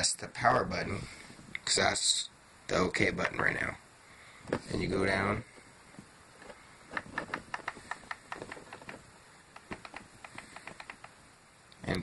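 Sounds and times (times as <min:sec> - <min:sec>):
tablet button clicking: 0:07.0 - 0:08.9, 0:09.5 - 0:11.2.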